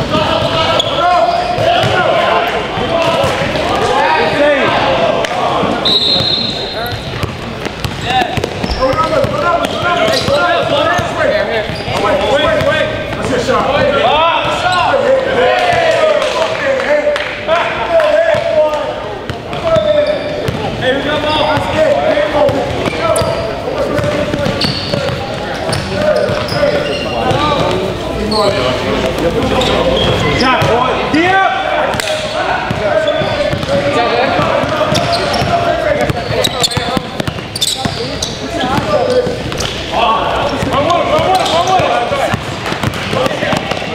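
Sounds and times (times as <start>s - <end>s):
sneakers squeaking on floor: 0.0s - 4.4s, 5.7s - 15.0s, 19.2s - 31.0s, 31.9s - 43.9s
people talking and calling: 0.0s - 43.9s
players' voices: 0.0s - 43.9s
basketball bouncing: 6.9s - 11.1s, 19.5s - 20.7s, 22.5s - 26.6s, 32.7s - 38.0s, 40.5s - 43.9s
basketball dribbling on gym floor: 40.6s - 43.9s.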